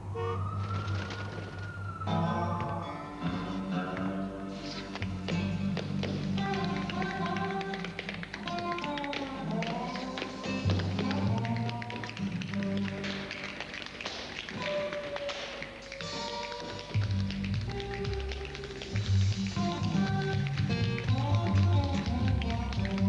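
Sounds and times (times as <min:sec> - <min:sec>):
hard-soled shoes tapping on floor: 0:04.9 - 0:23.0
instrumental music with bass line: 0:17.0 - 0:23.0.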